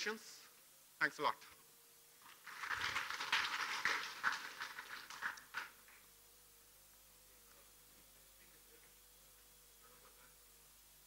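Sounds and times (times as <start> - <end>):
audience applause: 2.2 - 5.8.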